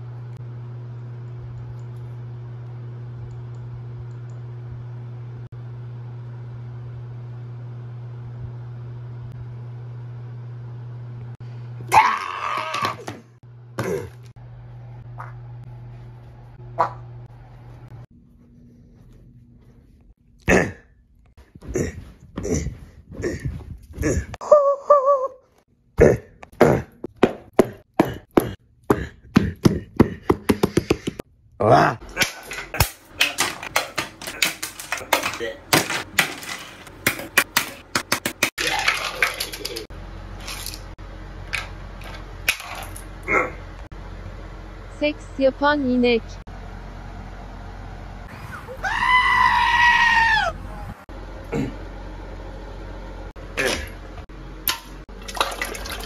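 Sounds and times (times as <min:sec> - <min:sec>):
goat screaming: 0:11.9 - 0:13.1, 0:48.4 - 0:51.0
person's strained wavering voice: 0:20.4 - 0:20.9, 0:21.6 - 0:25.4, 0:26.0 - 0:27.1, 0:31.6 - 0:32.1.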